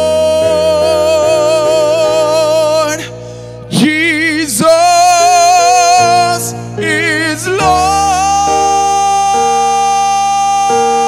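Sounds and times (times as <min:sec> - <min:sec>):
keyboard chords: 0:00.0 - 0:11.0
man singing long high note: 0:00.0 - 0:11.0.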